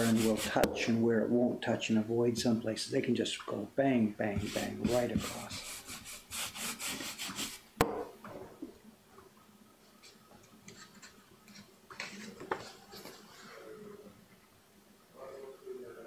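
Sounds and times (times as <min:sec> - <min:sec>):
brush scrubbing wooden block: 0:00.0 - 0:00.6, 0:04.3 - 0:07.6
sharp knock: 0:00.5 - 0:01.0.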